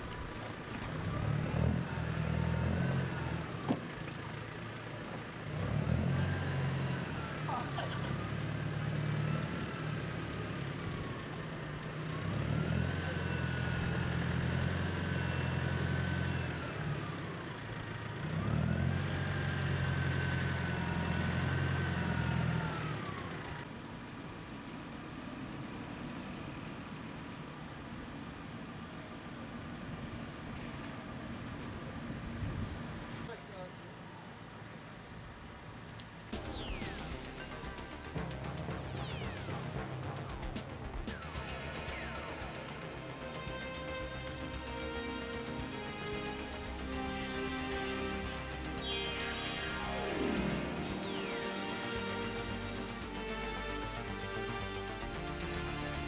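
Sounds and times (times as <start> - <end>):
engine revving with whine: 0.0 - 23.7, 36.4 - 56.0.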